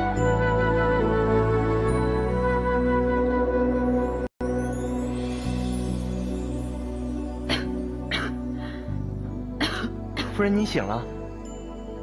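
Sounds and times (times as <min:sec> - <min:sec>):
soft background music: 0:00.0 - 0:12.0
woman coughing: 0:07.5 - 0:08.5, 0:09.6 - 0:10.4.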